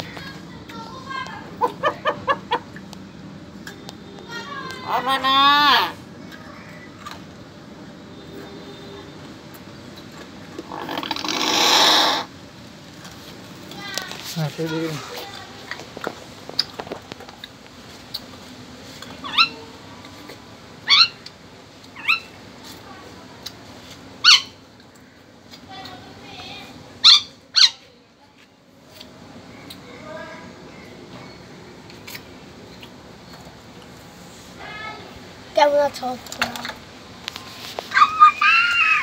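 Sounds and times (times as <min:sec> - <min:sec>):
myna calling: 0:10.6 - 0:12.3.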